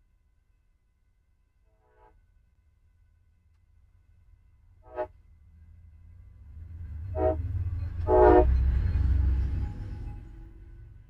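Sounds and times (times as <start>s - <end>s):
train horn blasts: 4.9s - 5.1s, 7.1s - 8.7s.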